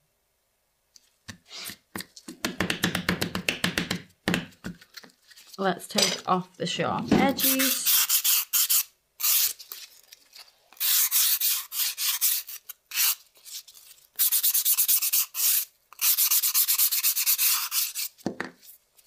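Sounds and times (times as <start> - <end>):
nail file rasping on nails: 7.4 - 9.6, 10.8 - 13.2, 14.2 - 18.1.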